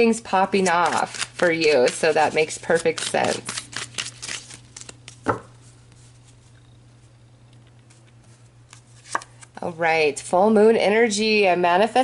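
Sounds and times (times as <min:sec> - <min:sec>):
steady low hum: 0:00.0 - 0:12.0
faint card handling: 0:00.6 - 0:09.6
cards tapped on table: 0:05.2 - 0:05.5.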